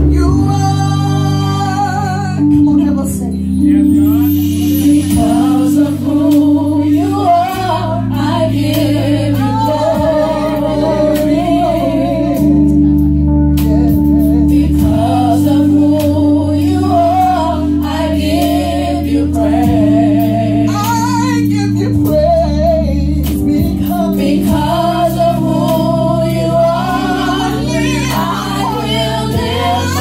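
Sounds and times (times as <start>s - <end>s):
held accompaniment chords: 0.0s - 30.0s
women's gospel group singing: 0.0s - 30.0s.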